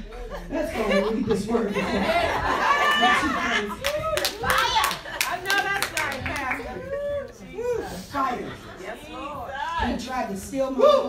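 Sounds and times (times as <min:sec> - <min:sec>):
hand clapping: 0:03.8 - 0:06.6.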